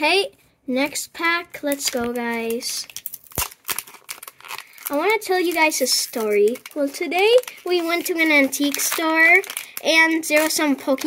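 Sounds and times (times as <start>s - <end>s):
foil wrapper tearing and crinkling: 1.6s - 11.0s.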